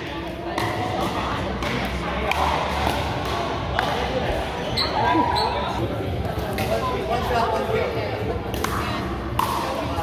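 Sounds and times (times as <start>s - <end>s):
paddles hitting plastic ball: 8.5s - 10.0s.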